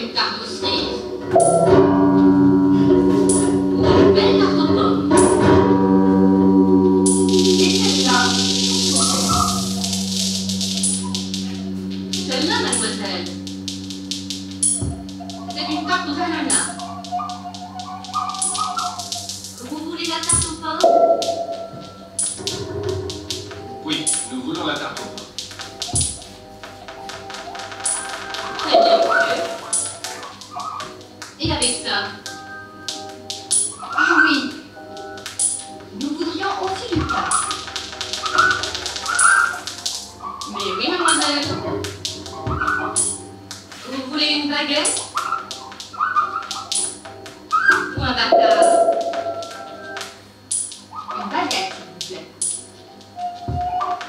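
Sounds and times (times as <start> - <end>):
experimental electronic music: 0.6 - 54.0
low hum: 1.2 - 26.4
gliding warbling pitched sounds: 1.2 - 31.0, 35.3 - 43.8, 44.7 - 51.3.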